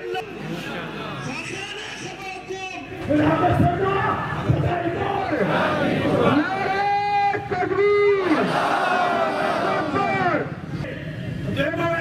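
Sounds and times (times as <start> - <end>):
crowd of men shouting: 3.2 - 10.6.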